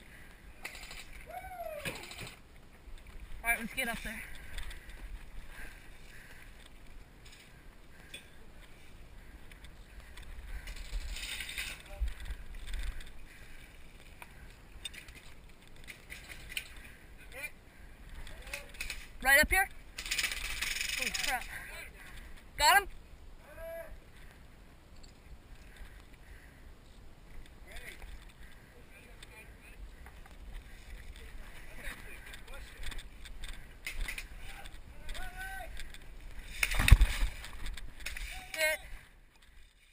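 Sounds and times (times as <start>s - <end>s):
gear rustling: 0.6s - 17.0s, 19.8s - 22.4s.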